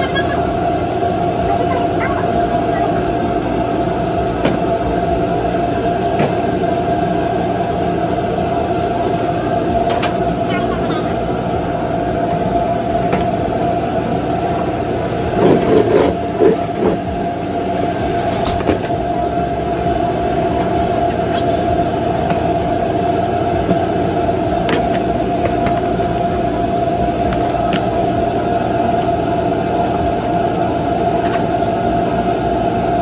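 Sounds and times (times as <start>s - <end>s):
machinery drone with whine: 0.0s - 33.0s.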